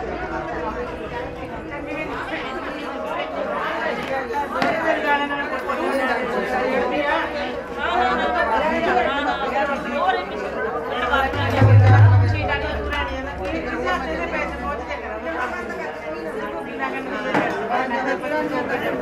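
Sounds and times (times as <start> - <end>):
low hum: 10.9 - 15.7.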